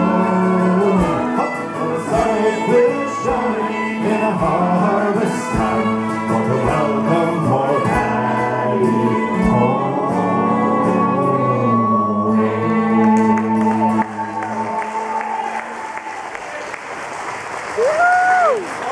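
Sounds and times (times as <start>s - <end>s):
live folk band playing: 0.0s - 15.6s
audience applause: 13.0s - 18.9s.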